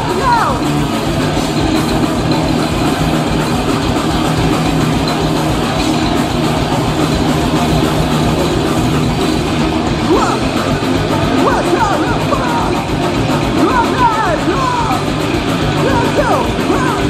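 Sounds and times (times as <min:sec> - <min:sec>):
live thrash metal band: 0:00.0 - 0:17.0.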